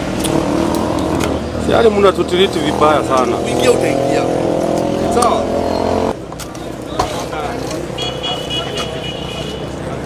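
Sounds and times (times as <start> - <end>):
vehicle engine humming: 0.0 - 10.0
crowd chatter: 0.8 - 10.0.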